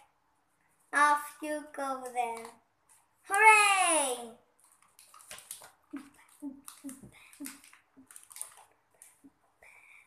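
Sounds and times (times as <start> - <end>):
book pages turning: 4.5 - 9.4.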